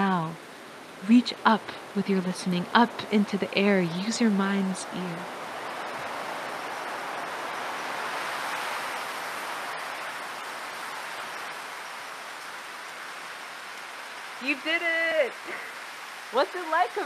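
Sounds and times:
rushing wind: 0.0 - 17.0.

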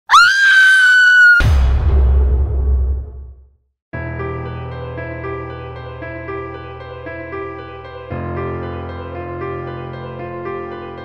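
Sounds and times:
woman screaming: 0.1 - 1.5
deep booming hit: 1.4 - 3.4.

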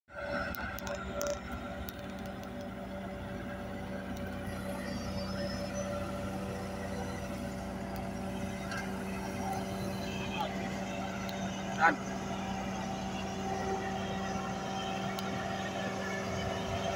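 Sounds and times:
diesel engines droning: 0.1 - 16.9.

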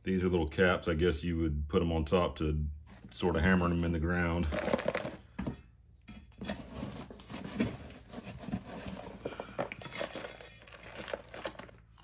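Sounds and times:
powder pouring into plastic tub: 4.4 - 5.3, 9.3 - 11.9.

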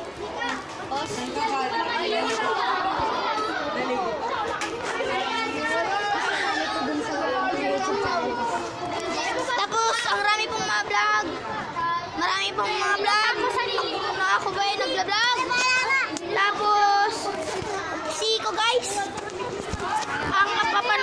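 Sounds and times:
children chattering: 0.0 - 21.0.

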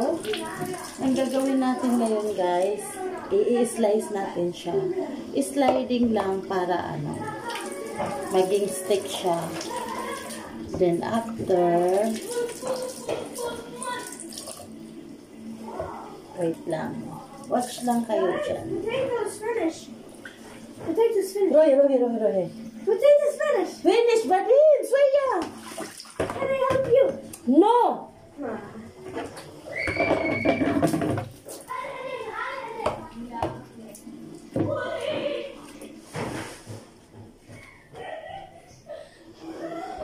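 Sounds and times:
tap running into sink: 5.6 - 14.8, 25.4 - 27.3, 29.1 - 31.6, 32.8 - 33.7, 34.4 - 34.9.

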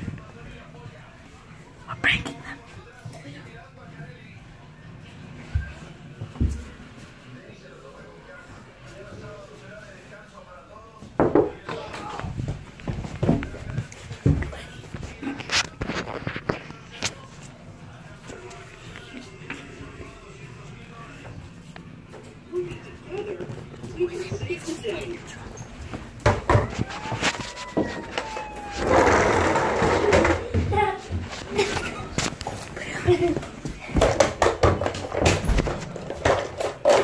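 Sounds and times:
muffled voices: 0.0 - 37.0
people laughing: 31.4 - 33.7.

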